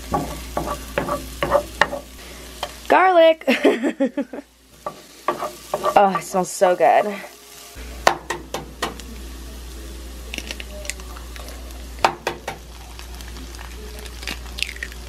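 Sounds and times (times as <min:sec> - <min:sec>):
onion sizzling in butter: 0:00.0 - 0:15.0
sharp knocks on frying pan: 0:08.0 - 0:09.0, 0:12.0 - 0:12.6
eggs cracked into pan: 0:10.3 - 0:15.0.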